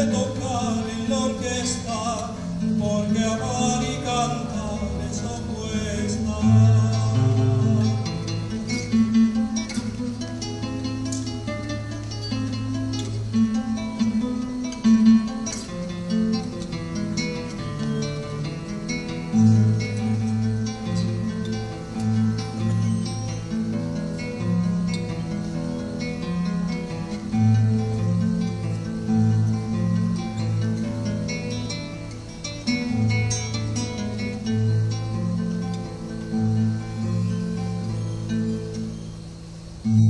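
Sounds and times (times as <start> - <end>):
acoustic guitar playing: 0.0 - 40.0.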